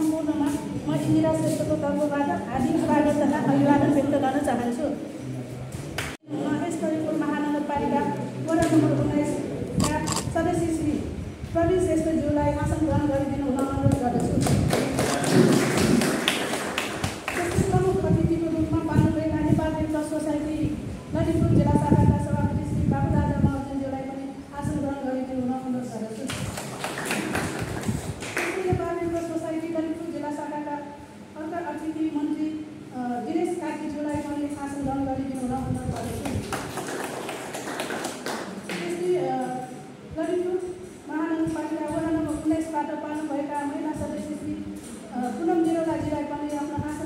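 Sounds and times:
people clapping: 5.9s - 6.2s, 13.9s - 17.7s, 26.3s - 28.7s, 36.0s - 39.1s
people applauding: 14.2s - 17.6s, 26.3s - 28.6s, 36.2s - 38.9s.

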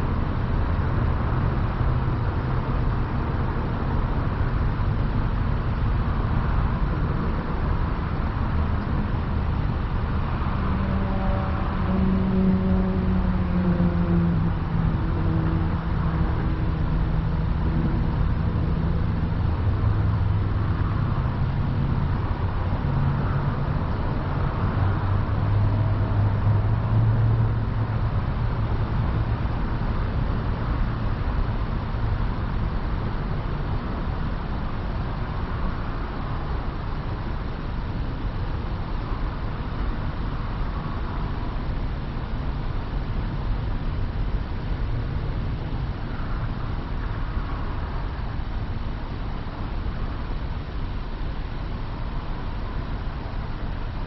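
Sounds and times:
low engine hum: 0.0s - 54.0s.

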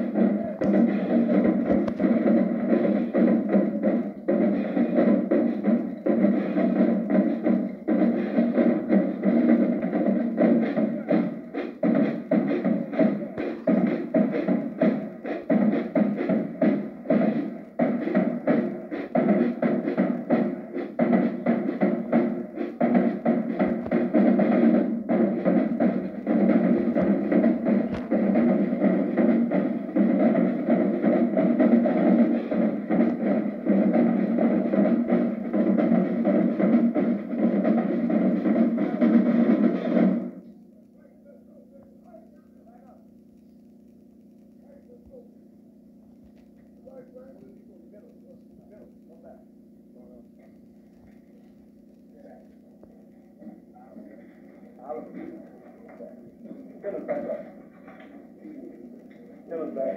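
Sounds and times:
marching drumline: 0.0s - 59.9s.

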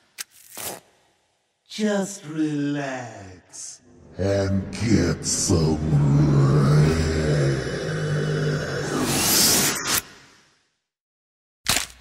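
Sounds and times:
deep monster growl: 3.9s - 9.9s.

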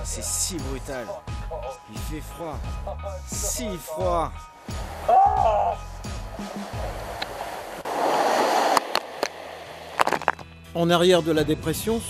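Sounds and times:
background music: 0.0s - 7.4s, 10.2s - 12.0s
seawater rushing across deck: 4.7s - 10.2s
vocal exclamation: 5.1s - 5.9s.

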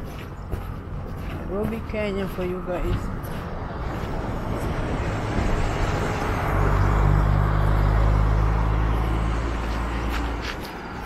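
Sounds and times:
vehicle engine hum: 0.0s - 11.0s.

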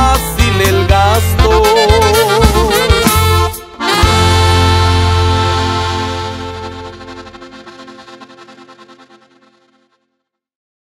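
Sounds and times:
band holding final chord: 2.7s - 9.7s.

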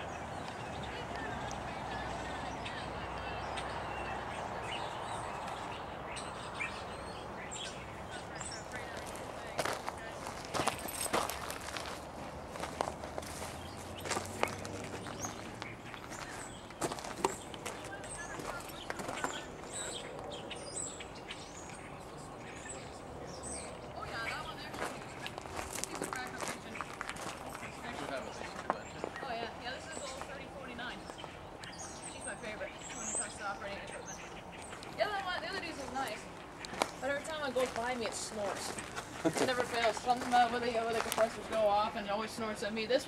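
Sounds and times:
footsteps on gravel: 8.2s - 20.3s, 24.0s - 31.3s, 34.6s - 42.4s.

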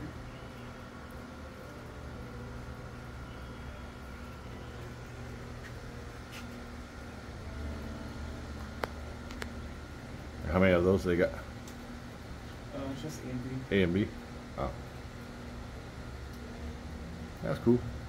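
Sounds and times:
faint steady whine: 0.0s - 18.0s
low mechanical hum: 0.0s - 18.0s.

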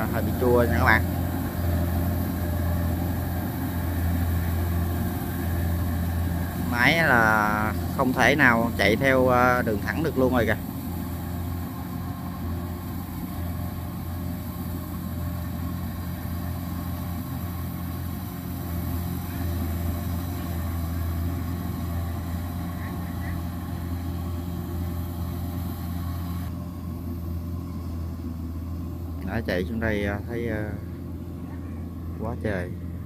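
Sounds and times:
combine harvester diesel engine: 0.0s - 33.0s.

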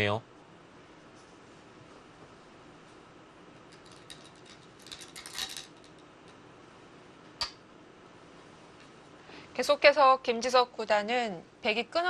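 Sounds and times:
go stones clinking in a bowl: 3.8s - 6.0s.

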